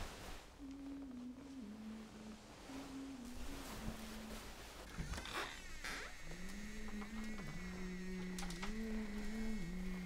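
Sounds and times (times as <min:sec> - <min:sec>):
faint wavering high tone: 0:00.6 - 0:04.8
low voice humming: 0:00.6 - 0:10.0.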